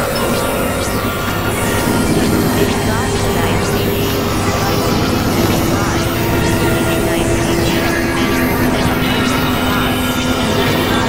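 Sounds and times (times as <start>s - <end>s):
electronic noise music: 0.0s - 11.0s.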